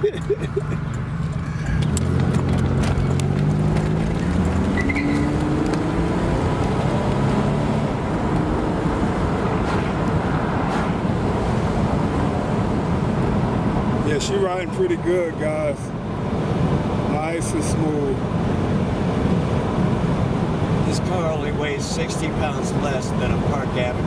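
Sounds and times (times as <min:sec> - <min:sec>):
car engine accelerating: 0:00.0 - 0:15.4
road and wind noise: 0:00.0 - 0:24.0.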